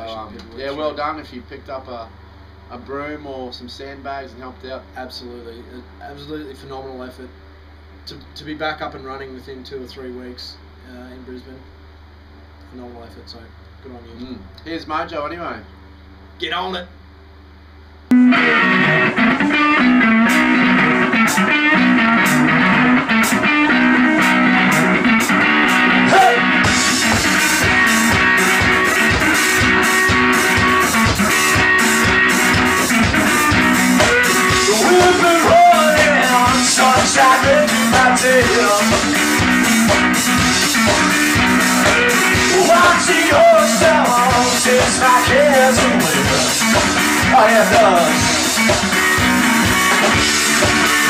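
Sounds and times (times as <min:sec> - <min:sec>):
plucked guitar riff: 0:18.1 - 0:51.0
drum and cymbal strokes: 0:24.2 - 0:51.0.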